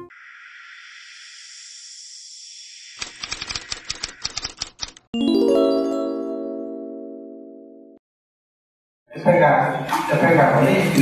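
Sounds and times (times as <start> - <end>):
typewriter clacking: 3.0 - 5.1.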